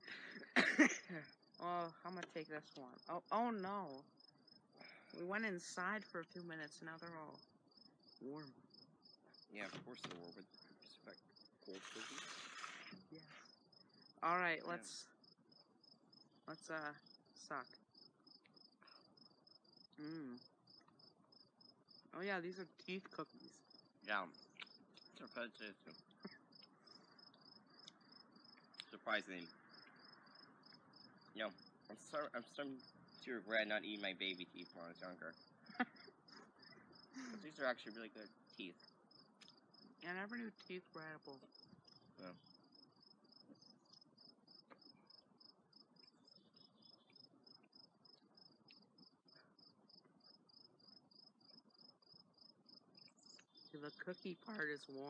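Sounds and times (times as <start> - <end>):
insects chirping: 0.0 - 55.0
person talking: 0.1 - 4.0, 4.8 - 7.4, 9.5 - 13.4, 14.2 - 15.1, 16.5 - 17.7, 22.2 - 24.3, 25.0 - 26.4, 31.4 - 36.1, 37.2 - 38.8, 40.0 - 41.4.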